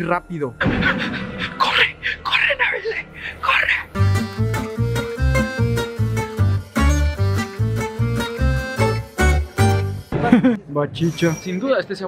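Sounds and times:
upbeat music with plucked strings: 0:04.0 - 0:10.5.

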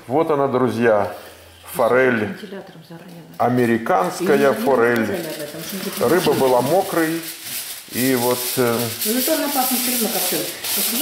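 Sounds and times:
person talking: 0:03.5 - 0:07.2.

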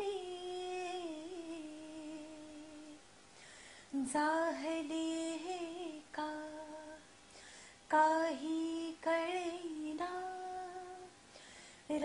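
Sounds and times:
woman singing unaccompanied: 0:00.0 - 0:03.0, 0:03.9 - 0:07.1, 0:07.9 - 0:11.2.

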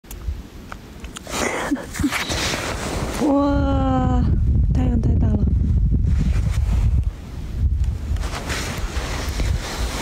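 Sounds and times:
wind buffeting microphone: 0:01.8 - 0:10.0.

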